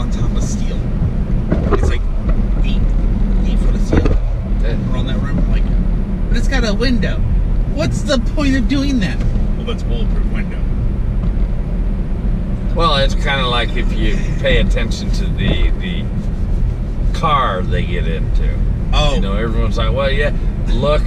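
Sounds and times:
car road and engine rumble: 0.0s - 21.0s
person speaking: 12.8s - 16.1s, 17.2s - 21.0s.

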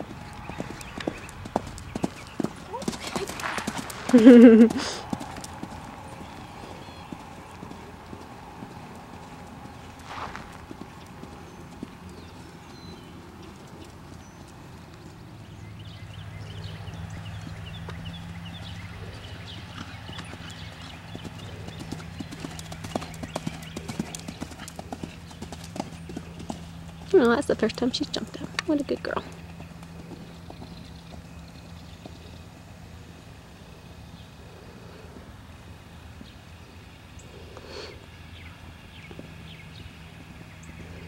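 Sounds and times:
horse hoofbeats cantering on sand: 0.0s - 32.8s, 38.9s - 41.0s.

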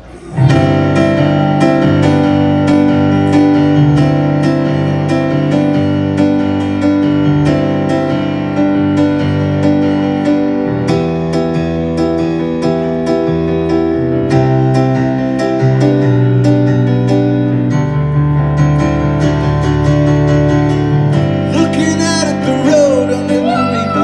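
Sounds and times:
piano keyboard chords: 0.0s - 24.0s.

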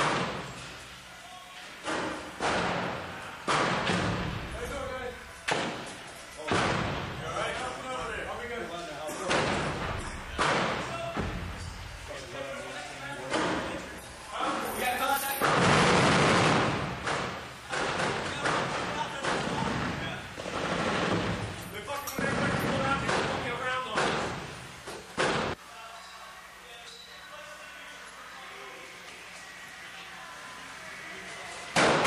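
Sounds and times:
gunshots echoing in a room: 2.4s - 4.5s, 15.4s - 19.6s, 31.7s - 32.0s.

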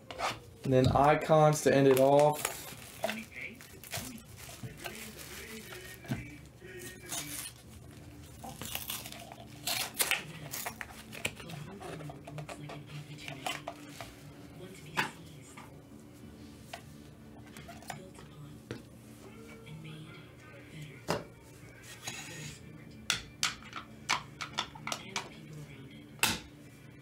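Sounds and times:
plastic wrapping rustling: 0.4s - 12.1s.

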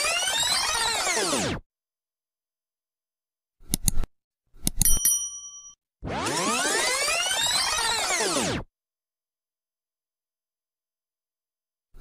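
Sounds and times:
sharp mouse clicks: 3.6s - 5.0s
bright bell ding: 4.8s - 5.8s.

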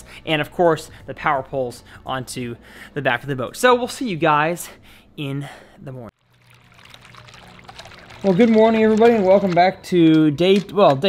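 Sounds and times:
fountain water splashing and trickling: 6.2s - 9.7s.

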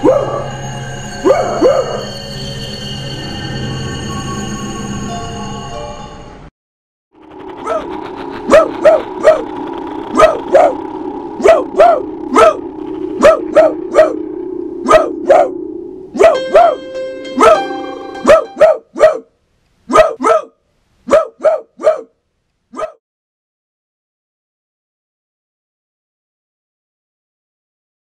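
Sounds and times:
dog barking: 0.0s - 0.5s, 7.6s - 9.5s, 10.1s - 10.8s, 11.4s - 12.6s, 13.2s - 14.2s, 14.8s - 15.6s, 16.2s - 16.8s, 17.4s - 19.3s, 19.9s - 23.0s
low droning music: 0.0s - 6.5s, 7.2s - 18.7s
held music chord: 10.2s - 18.7s.

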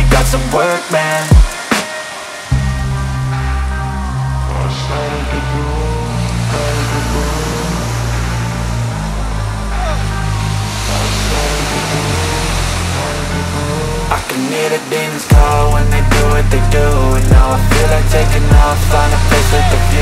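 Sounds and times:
instrumental rap music: 0.0s - 20.0s.

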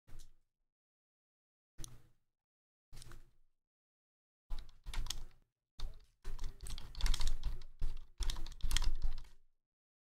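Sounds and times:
keyboard typing: 4.5s - 9.4s.

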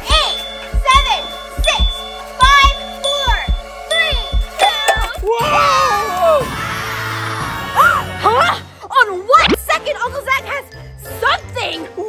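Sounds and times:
tinkling jingle: 0.0s - 5.3s
cheerful children's music: 0.0s - 12.0s.

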